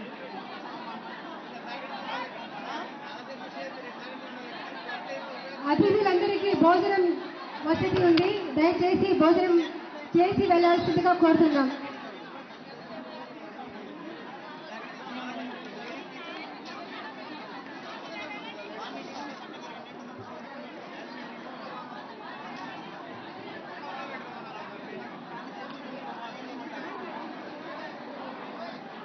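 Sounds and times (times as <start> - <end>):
babble of crowd voices: 0.0 - 29.0.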